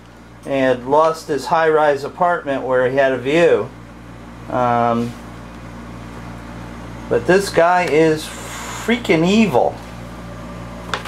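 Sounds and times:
low electrical hum with hiss: 0.0 - 11.0.

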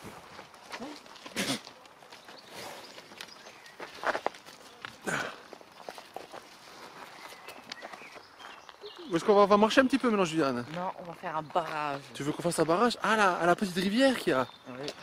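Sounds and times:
footsteps on dirt: 0.0 - 15.0.

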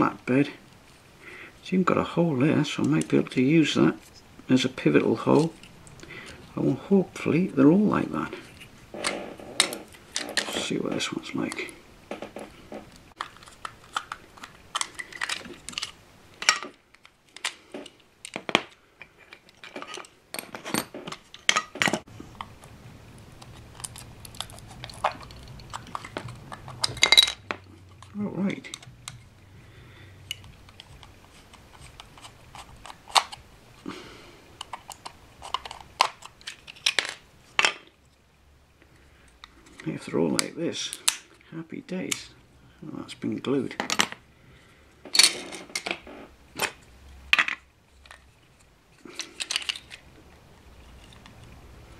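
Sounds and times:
small plastic parts clicking: 12.9 - 22.7, 23.4 - 29.3, 34.6 - 37.7, 47.4 - 50.1.

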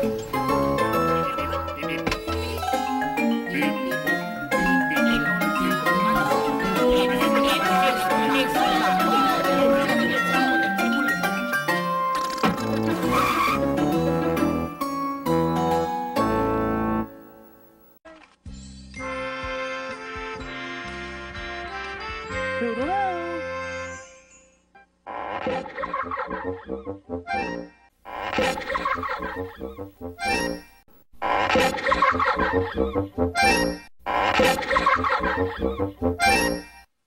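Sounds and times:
cartoon jingle with mallet notes: 0.5 - 12.1.

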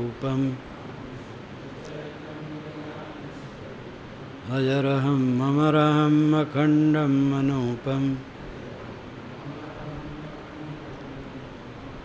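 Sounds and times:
man chanting in held notes: 0.0 - 0.8, 4.4 - 8.3, 9.4 - 11.6.

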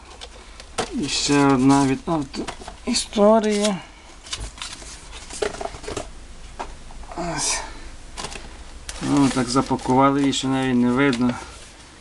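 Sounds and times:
person speaking: 0.8 - 4.0, 7.0 - 8.0, 8.9 - 11.6.

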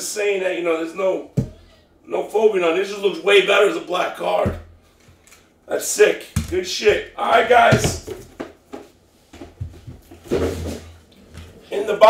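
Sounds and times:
cardboard box knocks and scrapes: 9.6 - 10.9.

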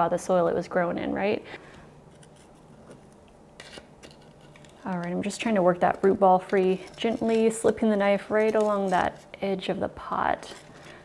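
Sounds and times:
knife scraping inside a pot: 3.6 - 9.5.

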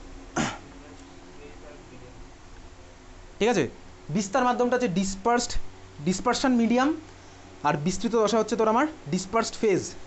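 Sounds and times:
man clearing throat: 0.3 - 0.7.

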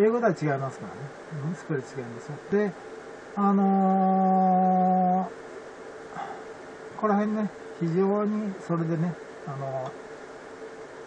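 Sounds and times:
man's drawn-out hesitation sound: 0.0 - 5.4.

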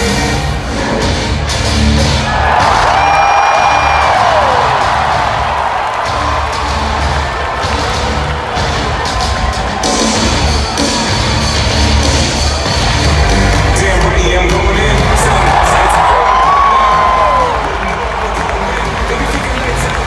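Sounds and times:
loud music with pulsing beat: 0.0 - 20.0
crowd cheering and whooping: 2.0 - 13.6, 14.8 - 20.0.

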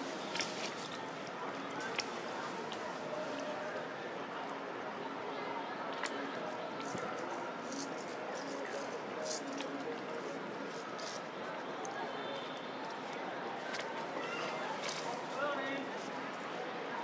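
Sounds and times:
indistinct background speech: 0.0 - 17.0
steady outdoor hiss: 0.0 - 17.0.

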